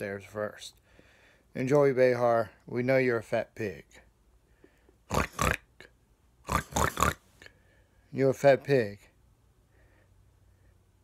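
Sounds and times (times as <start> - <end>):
man snorting like a pig: 5.1 - 7.3.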